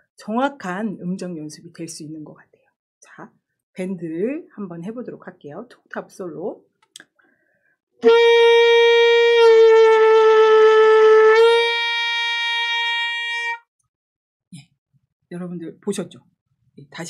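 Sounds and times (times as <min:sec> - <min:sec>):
alto saxophone note bending: 0:08.0 - 0:13.6.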